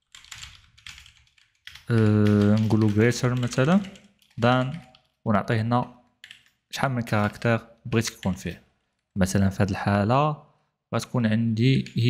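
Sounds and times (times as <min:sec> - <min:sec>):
keyboard typing: 0:00.0 - 0:05.2, 0:06.1 - 0:08.9
person speaking: 0:01.9 - 0:05.9, 0:06.7 - 0:10.4, 0:11.0 - 0:12.0.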